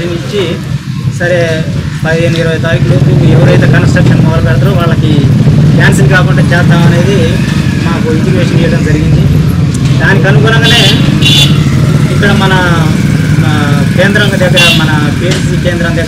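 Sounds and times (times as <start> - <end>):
man speaking loudly: 10.0 - 11.2, 12.0 - 16.0.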